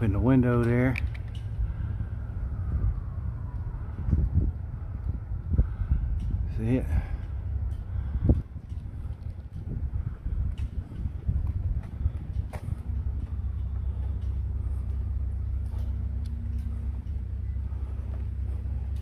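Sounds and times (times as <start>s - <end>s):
faint hum: 0.0s - 19.0s
low engine rumble: 0.0s - 19.0s.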